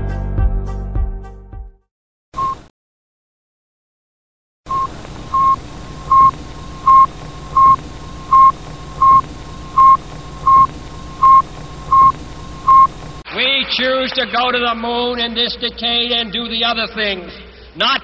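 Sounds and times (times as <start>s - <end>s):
short electronic beeps: 2.4s - 2.7s, 4.7s - 13.2s
faint held tone: 4.7s - 13.2s
low hum and hiss: 4.7s - 13.2s.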